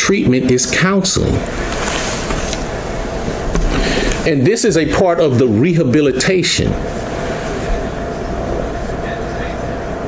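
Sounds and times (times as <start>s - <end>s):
faint constant hum: 0.0s - 10.0s
low rumble and hiss: 0.0s - 10.0s.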